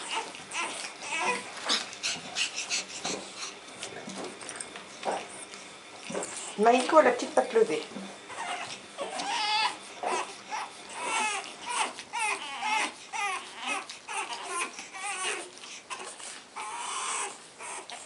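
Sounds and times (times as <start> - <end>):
puppies whining: 0.0 - 7.1, 8.1 - 18.0.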